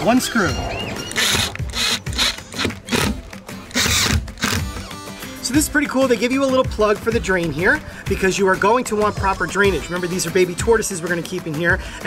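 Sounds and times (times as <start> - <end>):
background music: 0.0 - 12.0
cordless drill driving screw: 1.2 - 4.9.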